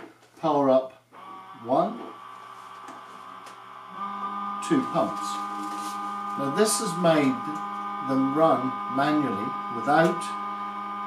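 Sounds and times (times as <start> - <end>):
electric pump whine: 1.1 - 11.0
second pump humming: 1.1 - 11.0.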